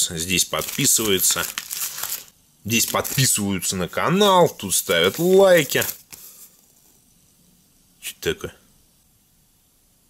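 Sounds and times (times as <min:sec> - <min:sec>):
faint room tone hiss: 0:00.0 - 0:10.0
paper rustling: 0:00.4 - 0:03.5, 0:04.1 - 0:06.9.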